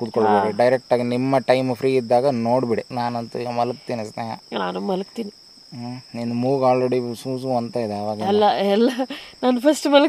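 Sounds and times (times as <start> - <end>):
person talking: 0.0 - 0.7, 8.2 - 9.0
crickets trilling: 0.0 - 10.0.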